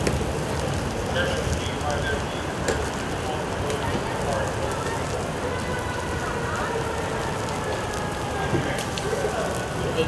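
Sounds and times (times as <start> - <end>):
fire crackling: 0.0 - 10.0
flames hissing: 0.0 - 10.0.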